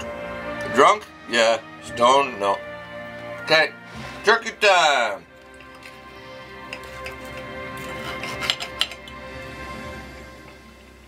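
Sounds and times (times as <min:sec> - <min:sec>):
background music: 0:00.0 - 0:11.0
cutlery scraping on plate: 0:06.6 - 0:09.2.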